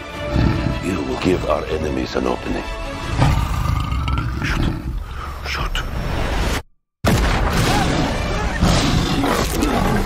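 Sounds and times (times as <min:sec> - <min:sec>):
lion roaring: 0:00.2 - 0:00.9, 0:03.1 - 0:05.0.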